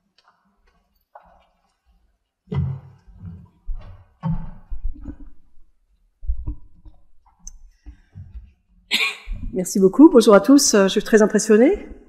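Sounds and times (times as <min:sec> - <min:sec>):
microphone handling thumps and clicks: 0:02.5 - 0:05.6, 0:06.2 - 0:08.6, 0:09.3 - 0:09.7.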